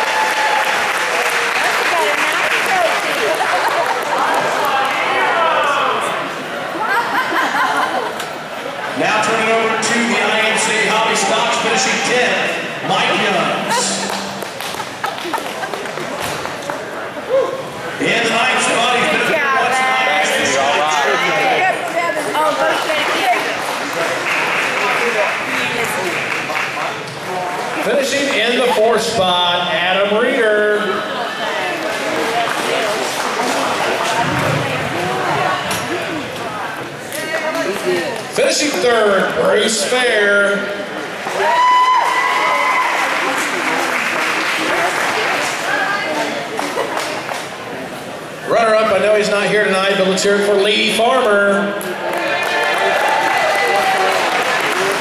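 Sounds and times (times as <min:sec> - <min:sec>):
indistinct talking in a hall: 0:00.0 - 0:55.0.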